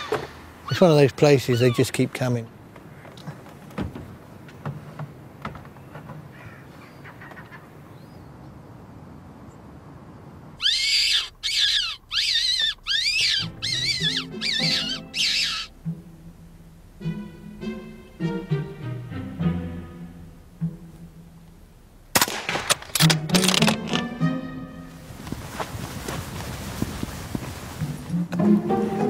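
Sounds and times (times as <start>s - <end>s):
shrill wavering squealing calls: 0.0s - 1.9s, 10.6s - 15.8s
low orchestral music: 13.4s - 22.1s, 23.0s - 25.3s, 27.8s - 29.0s.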